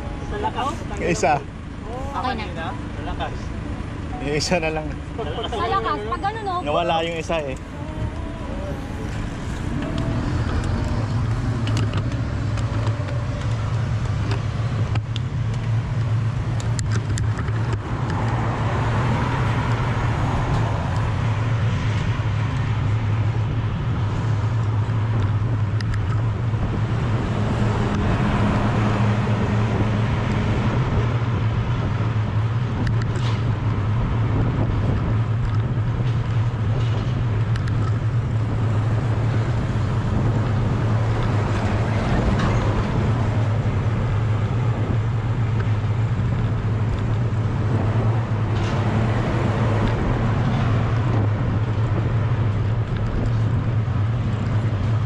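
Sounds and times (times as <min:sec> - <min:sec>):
road noise: 0:00.0 - 0:55.0
wind rushing over microphone: 0:06.9 - 0:55.0.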